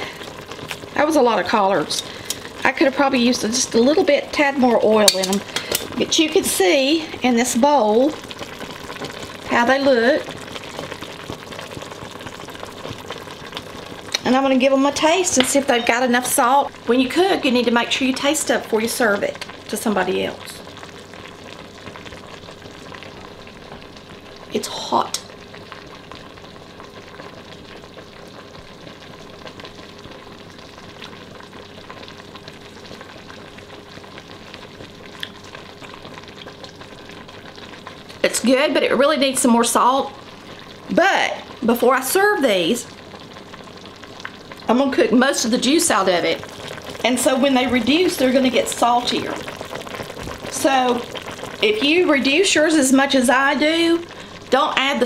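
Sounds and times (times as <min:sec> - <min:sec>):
faint steady hum: 0:00.0 - 0:55.0
pot simmering with bubbling: 0:00.0 - 0:55.0.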